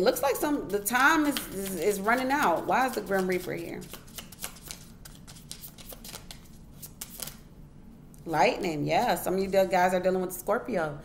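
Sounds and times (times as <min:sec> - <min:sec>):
cards being shuffled: 0:00.9 - 0:07.4.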